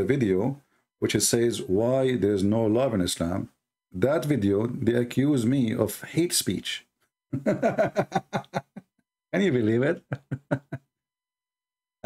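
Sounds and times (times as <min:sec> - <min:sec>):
man chuckling: 0:07.4 - 0:08.9, 0:10.0 - 0:10.9.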